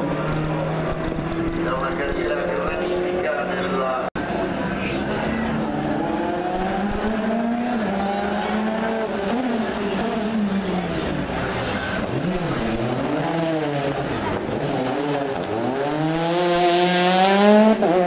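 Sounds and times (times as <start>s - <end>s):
car accelerating through gears: 0.0s - 18.0s
rally car engine revving: 0.0s - 18.0s.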